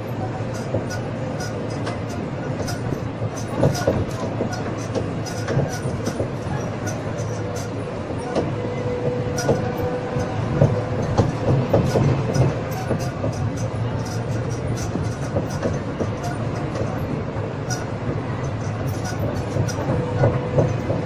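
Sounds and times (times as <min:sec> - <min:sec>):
wagons rattling and clicking: 0:00.4 - 0:21.0.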